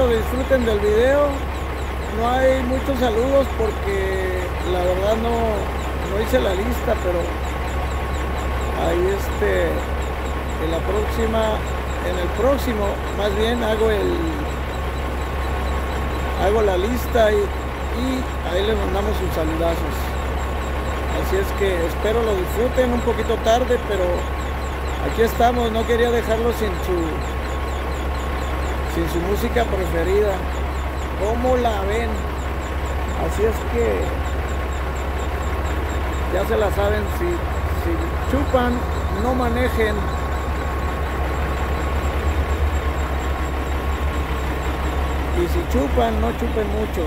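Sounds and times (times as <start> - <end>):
diesel truck engine idling: 0.0 - 47.0.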